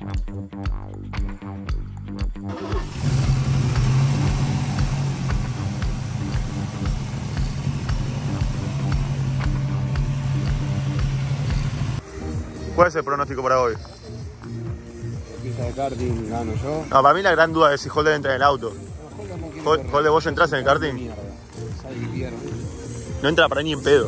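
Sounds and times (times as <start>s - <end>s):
music with steady beat: 0.0s - 2.5s, 3.2s - 24.0s
car engine droning: 2.5s - 12.0s.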